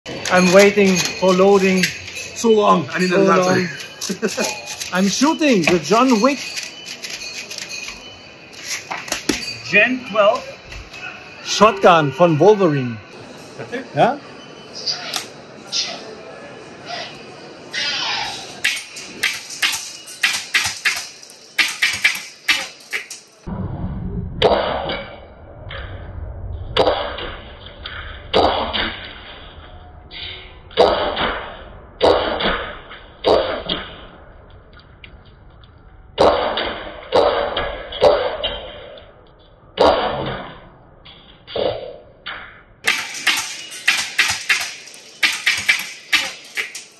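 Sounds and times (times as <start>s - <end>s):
low rumbling noise: 23.4s - 30.8s
airsoft gun shots: 42.8s - 46.8s.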